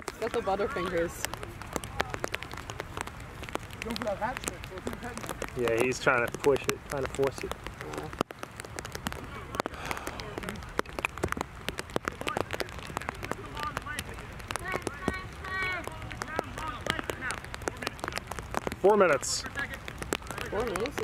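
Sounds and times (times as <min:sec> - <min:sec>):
rain pattering on plastic: 0:00.0 - 0:21.0.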